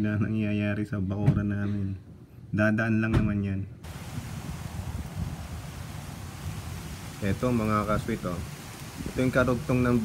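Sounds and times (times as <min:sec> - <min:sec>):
light drizzle hiss: 0:03.8 - 0:10.0
wind gusting on microphone: 0:03.8 - 0:10.0.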